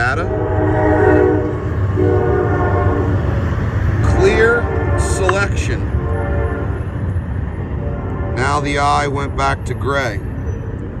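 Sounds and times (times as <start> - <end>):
low rumble: 0.0 - 8.9.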